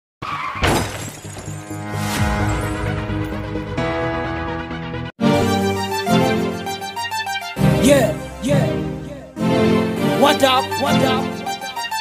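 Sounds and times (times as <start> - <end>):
loud crash: 0.6 - 3.4.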